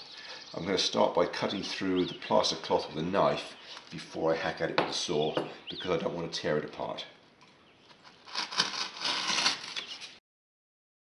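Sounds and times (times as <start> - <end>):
knife scraping through plaster: 8.2 - 10.2.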